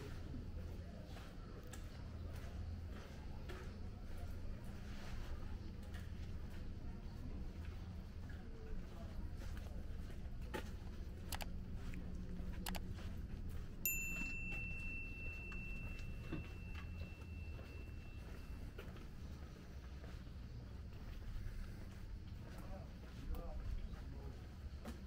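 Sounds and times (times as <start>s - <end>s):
steady low rumble: 2.0s - 24.8s
footstep clicks: 5.2s - 24.0s
clear high ringing tone: 13.6s - 19.4s.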